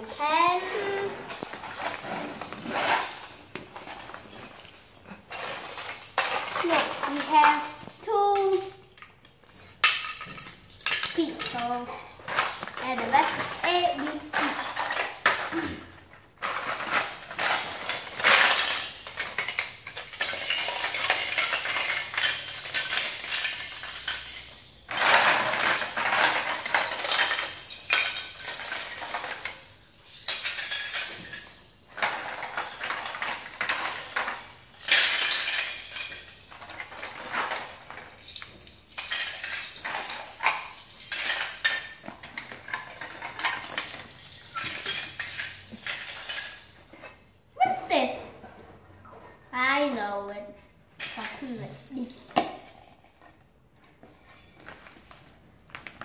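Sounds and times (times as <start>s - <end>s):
plastic bag rustling: 0.0s - 8.4s
plastic toy blocks clattering: 0.0s - 47.3s, 51.0s - 56.0s.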